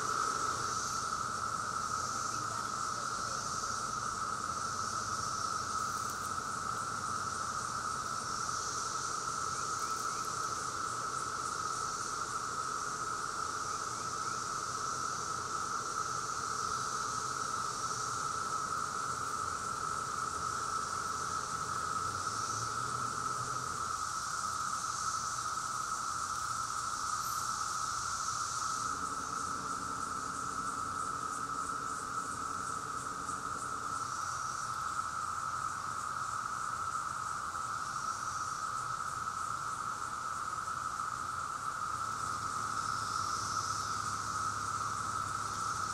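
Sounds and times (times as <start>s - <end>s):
cicadas droning: 0.0s - 45.9s.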